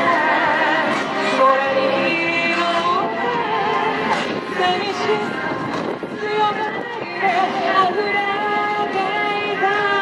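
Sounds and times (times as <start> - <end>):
woman singing: 0.0 - 5.5, 6.1 - 10.0
backing music: 0.0 - 10.0.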